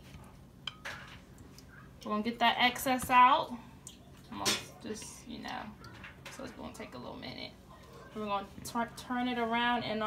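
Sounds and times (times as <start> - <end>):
tongs clinking against bowl: 0.6 - 1.1.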